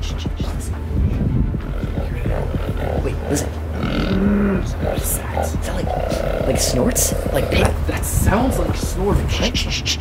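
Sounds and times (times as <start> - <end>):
tense background music: 0.0 - 10.0
pig-like snorting: 1.6 - 7.8.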